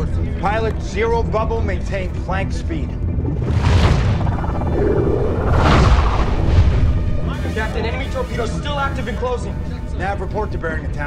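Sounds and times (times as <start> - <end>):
deep underwater rumble: 3.0 - 7.2
rushing whoosh: 3.4 - 7.2.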